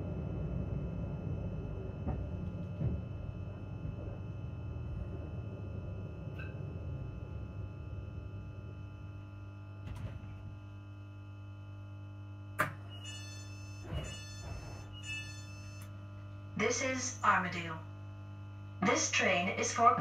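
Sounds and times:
electric train hum and rumble: 0.0s - 20.0s.

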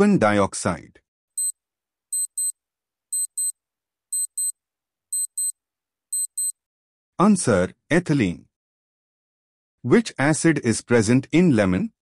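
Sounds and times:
clock ticking: 2.2s - 2.5s, 3.2s - 3.5s, 4.2s - 4.5s.

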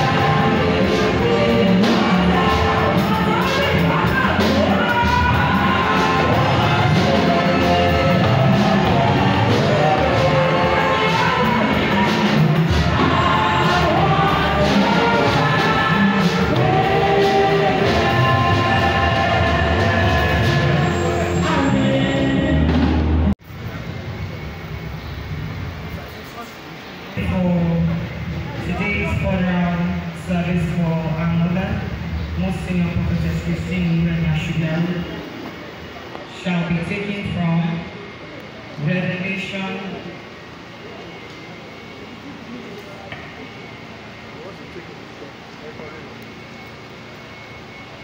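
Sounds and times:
muffled crowded hall noise: 0.0s - 48.0s.

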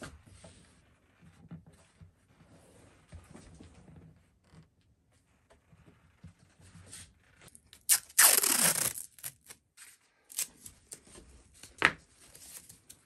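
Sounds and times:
adhesive liner peeling: 7.8s - 9.5s.

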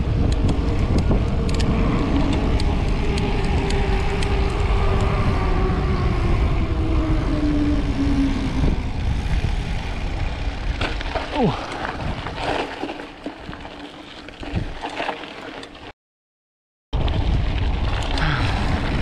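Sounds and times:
wind over microphone: 0.0s - 13.8s, 14.4s - 14.9s, 17.0s - 19.0s
bike tyres on asphalt: 0.0s - 15.9s, 17.0s - 19.0s.

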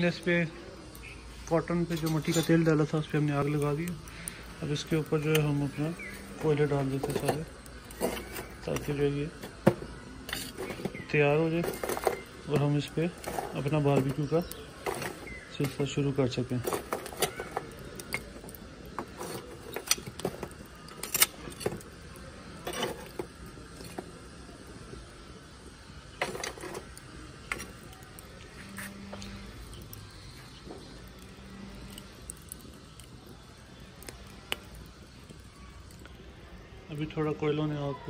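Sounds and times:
metal tongs clinking on charcoal: 0.0s - 24.2s, 26.1s - 36.2s.

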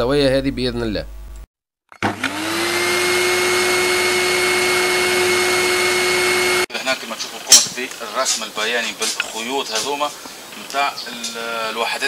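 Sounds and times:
small motor whirring: 2.0s - 6.7s.

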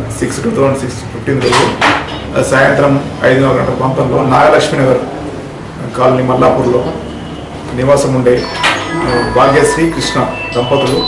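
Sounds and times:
man talking: 7.7s - 11.0s.

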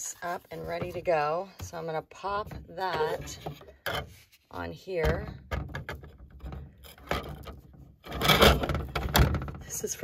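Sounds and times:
paper rubbing and scraping: 0.0s - 1.1s.

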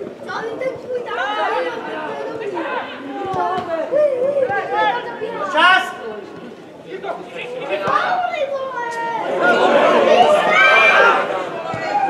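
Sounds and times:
footballers shouting: 1.0s - 6.1s, 6.9s - 12.0s.

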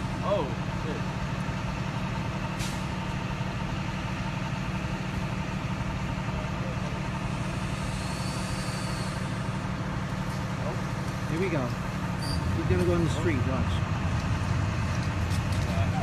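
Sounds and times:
vehicle engine idling: 0.0s - 16.0s.

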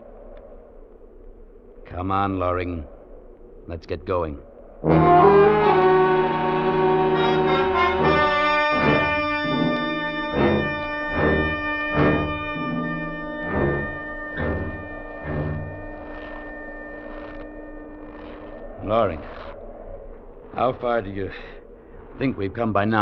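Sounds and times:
held brass chord: 4.8s - 16.0s.

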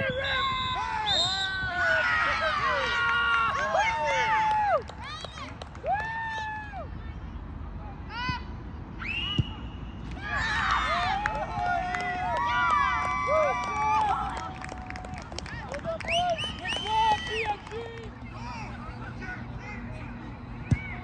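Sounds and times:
soccer ball kick thump: 20.6s - 21.0s.

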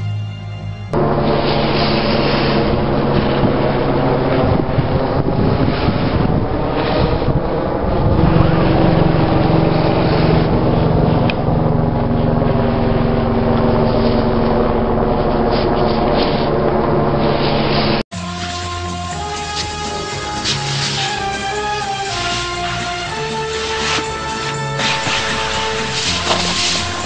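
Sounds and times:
loud engine drone: 0.0s - 27.0s
wind on microphone: 1.0s - 18.0s.

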